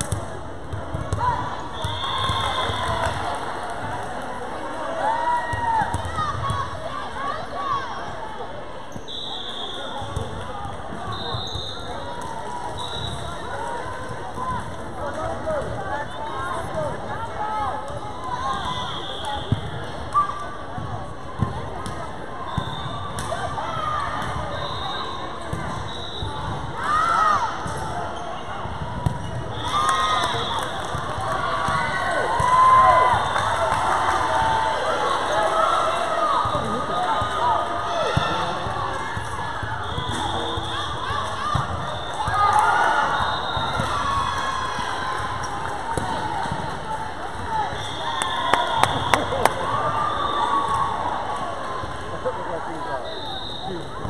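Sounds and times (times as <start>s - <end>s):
players and spectators calling out: 0.1s - 54.0s.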